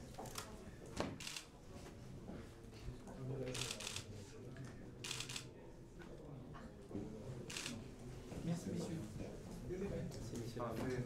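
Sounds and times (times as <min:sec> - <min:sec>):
camera shutters clicking: 0:07.5 - 0:07.8.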